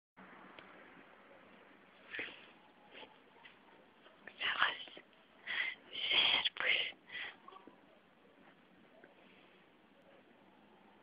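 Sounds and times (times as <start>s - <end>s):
person whispering: 4.3s - 5.1s, 5.7s - 7.0s.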